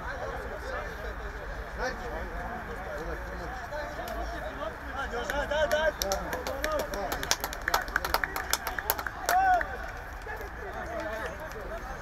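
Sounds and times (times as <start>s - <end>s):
men calling and talking: 0.0s - 12.0s.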